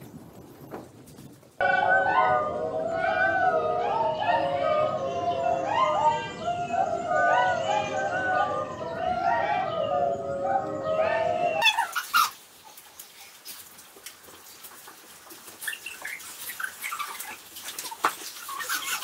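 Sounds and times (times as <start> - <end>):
high wavering whining calls: 1.6 - 12.3.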